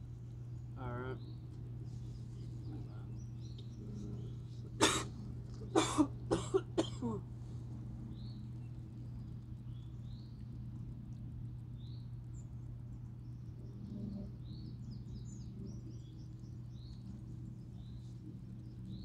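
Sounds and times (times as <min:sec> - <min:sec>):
steady low hum: 0:00.0 - 0:19.0
man coughing: 0:04.8 - 0:05.1, 0:05.8 - 0:07.2
throat-clearing: 0:04.8 - 0:05.1.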